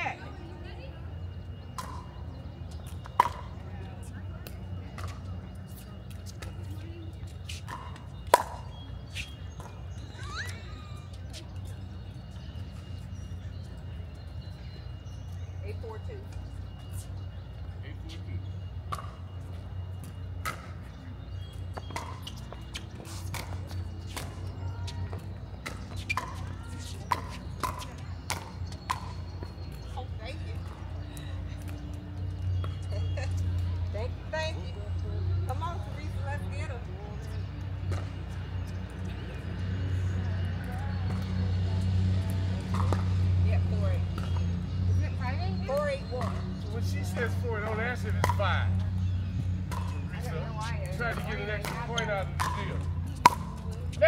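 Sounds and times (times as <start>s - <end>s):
voices: 0.0s - 54.0s.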